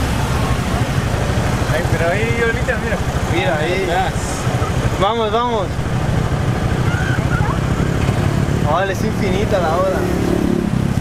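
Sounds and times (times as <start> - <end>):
motorbike engine rumbling: 0.0 - 11.0.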